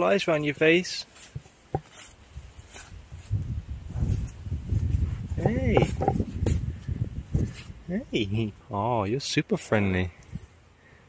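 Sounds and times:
muzzle rubbing on microphone: 1.0s - 8.0s.

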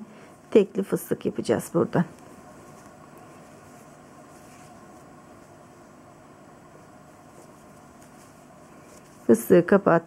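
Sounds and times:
room hiss: 0.0s - 10.0s
yarn rustling on crochet hook: 0.4s - 9.8s.

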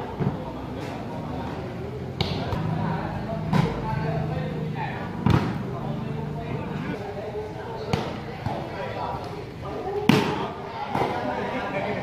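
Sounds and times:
spectators chattering: 0.0s - 12.0s.

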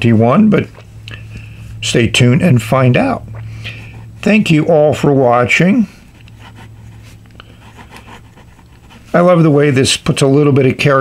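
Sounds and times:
steady low hum: 0.0s - 11.0s
pen scratching on paper: 6.3s - 9.4s.

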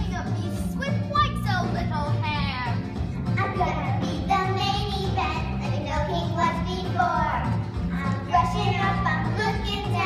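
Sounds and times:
backing music with bass beat: 0.0s - 10.0s
children singing: 3.4s - 10.0s.

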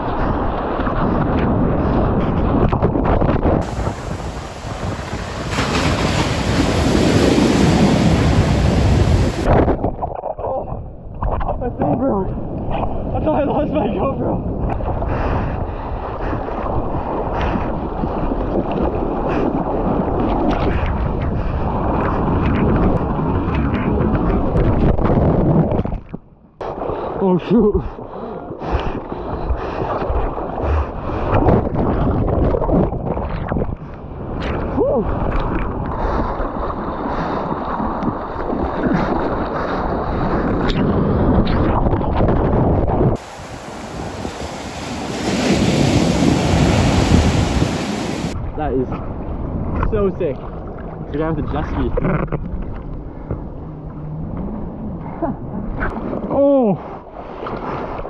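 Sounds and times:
seawater sloshing and splashing: 0.0s - 10.3s
wind buffeting microphone: 0.0s - 58.0s
churning whitewater rushing: 3.6s - 9.6s, 43.2s - 48.4s
wave breaking onto beach: 3.6s - 9.6s, 43.2s - 48.4s.

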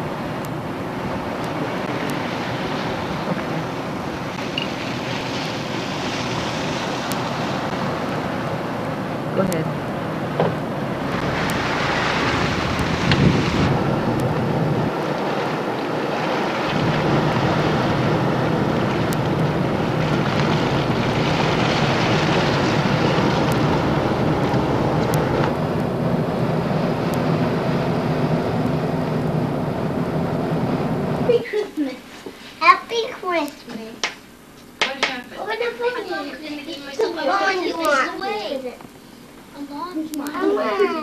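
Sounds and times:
car road and engine noise: 0.0s - 33.4s
rushing hiss: 1.1s - 9.5s, 10.4s - 32.7s.

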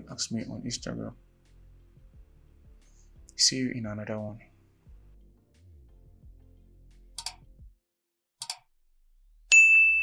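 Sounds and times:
double mouse click: 7.2s - 7.4s, 8.4s - 8.7s
bright bell ding: 9.5s - 10.0s.

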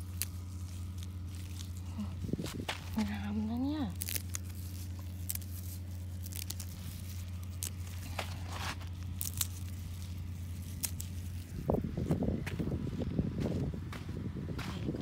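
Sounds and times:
herb stems snapping: 0.0s - 11.6s
foliage rustling: 0.0s - 13.6s
steady low hum: 0.0s - 15.0s.

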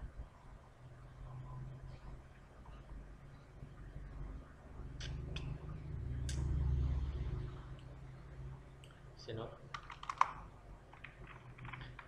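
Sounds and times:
low steady hum: 0.0s - 12.0s
computer keyboard keystrokes: 9.7s - 12.0s.

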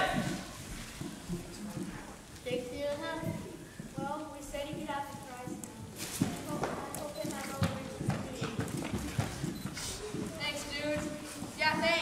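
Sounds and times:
footsteps on a stage: 0.0s - 12.0s
children's voices: 2.4s - 12.0s.

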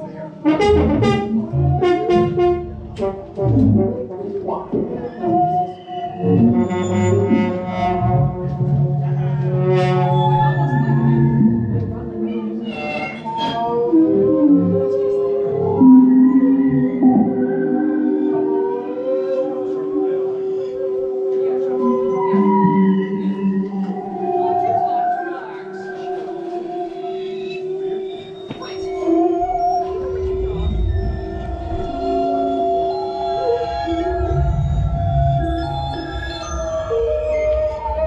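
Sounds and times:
bowed string instrument: 0.0s - 38.0s
experimental music held tones: 0.0s - 38.0s
trombone: 0.4s - 4.4s.

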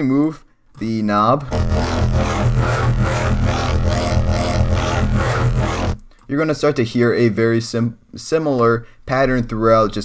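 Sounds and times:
synth growl bass note: 1.5s - 6.1s.

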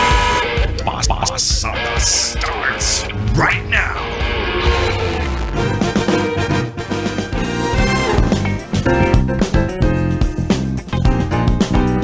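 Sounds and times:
theme music with steady beat: 0.0s - 12.0s
gliding voice-like sounds: 0.8s - 4.2s.

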